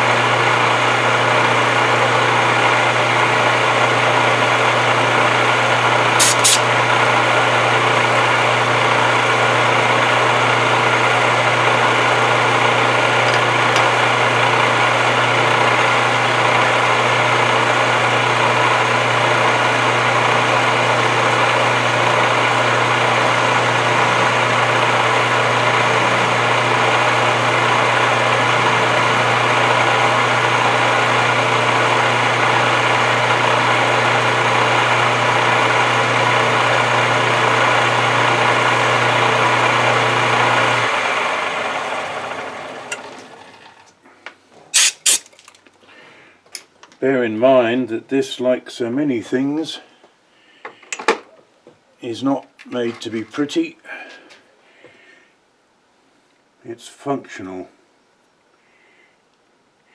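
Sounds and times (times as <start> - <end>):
metal lathe humming: 0.0 - 43.9
lathe chuck spinning down: 0.0 - 44.0.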